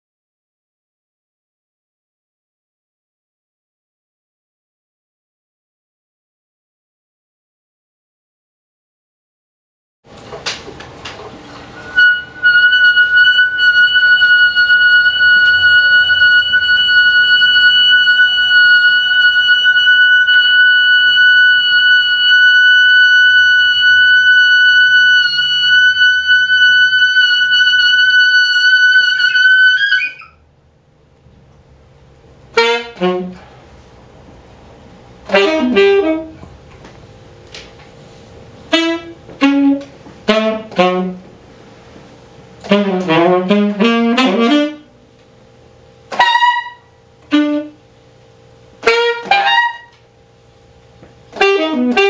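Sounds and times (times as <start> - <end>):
alto saxophone playing: 11.7 - 30.5, 32.5 - 33.9, 35.2 - 36.7, 38.6 - 41.8, 42.6 - 45.1, 46.1 - 47.9, 48.8 - 50.0, 51.3 - 52.0.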